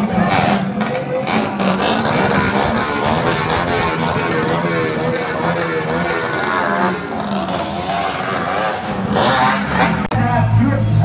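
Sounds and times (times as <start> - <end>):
small motorcycle engines: 0.0 - 11.0.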